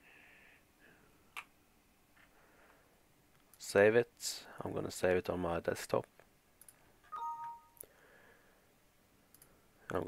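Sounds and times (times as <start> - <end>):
two-tone notification ding: 7.1 - 7.8.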